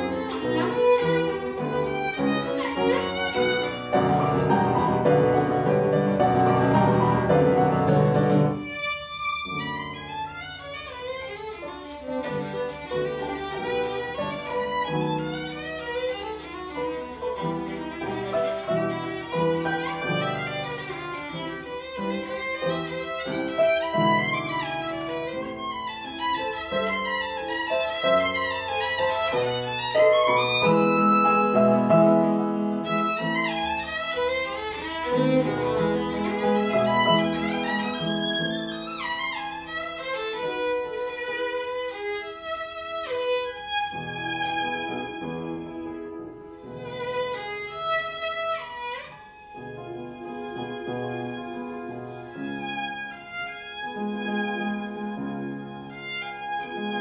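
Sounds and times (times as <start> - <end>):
piano accompaniment: 0.0 - 57.0
solo violin: 0.0 - 57.0.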